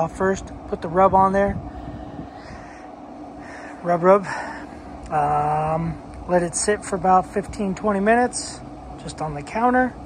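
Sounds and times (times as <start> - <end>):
person speaking: 0.0 - 1.7, 3.4 - 10.0
grill fan humming: 0.0 - 10.0
outdoor background noise: 0.0 - 10.0.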